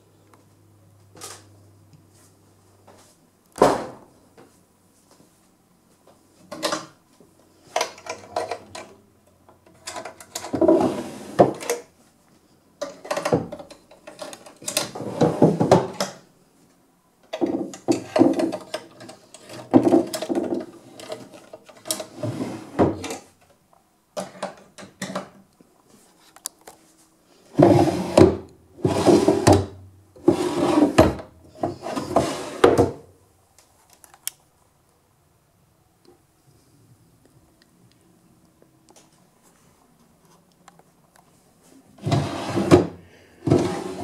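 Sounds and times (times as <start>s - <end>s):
drawers knocking shut: 3.6s - 4.0s, 19.5s - 20.7s, 27.6s - 33.0s, 42.0s - 44.0s
wooden drawers sliding: 9.8s - 11.8s, 12.9s - 16.2s, 17.4s - 23.3s, 27.6s - 33.1s, 42.0s - 44.0s.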